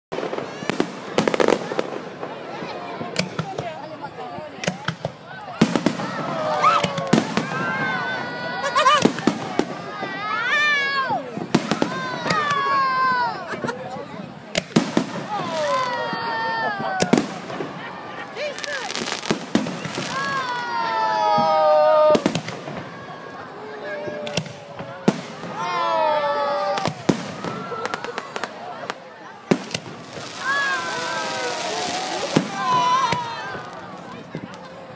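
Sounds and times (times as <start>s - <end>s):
firework bangs: 0.1s - 34.9s
firework crackling: 0.2s - 34.9s.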